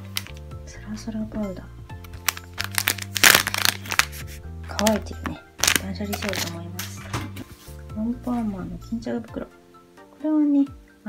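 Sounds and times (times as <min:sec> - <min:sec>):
plastic packet crinkling: 0:00.0 - 0:00.4, 0:02.0 - 0:07.0.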